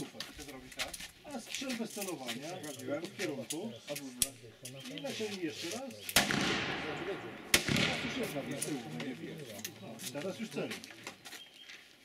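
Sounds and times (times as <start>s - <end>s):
revolver shots echoing: 6.2s - 8.9s.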